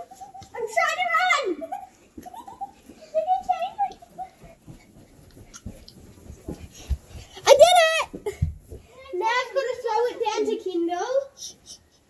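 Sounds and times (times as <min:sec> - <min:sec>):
children's voices: 0:00.0 - 0:04.5, 0:07.4 - 0:11.4
child running thumps: 0:00.0 - 0:09.7
child shouting: 0:00.6 - 0:01.7, 0:07.4 - 0:08.2.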